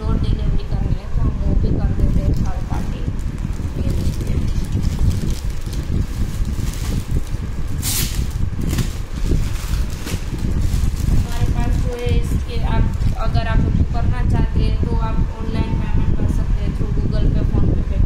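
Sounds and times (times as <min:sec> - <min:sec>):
microphone handling rumble: 0:00.0 - 0:18.0
plastic packaging crinkling: 0:02.1 - 0:13.4
clothes rustling: 0:02.4 - 0:13.4.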